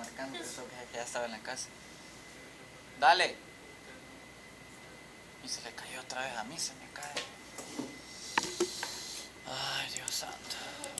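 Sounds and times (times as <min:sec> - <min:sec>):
person whispering softly: 0:09.5 - 0:11.0.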